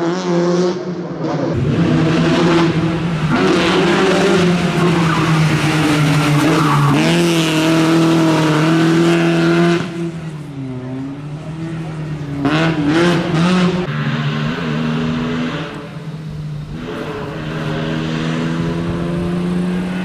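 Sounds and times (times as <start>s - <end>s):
rally car engine revving: 0.0s - 20.0s.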